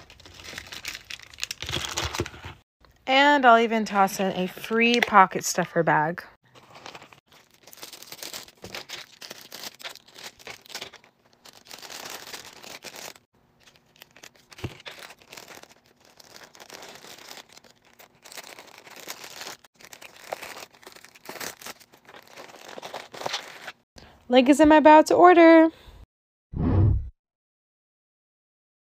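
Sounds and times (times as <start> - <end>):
plastic packaging crinkling: 0.0 - 2.6, 6.5 - 23.8.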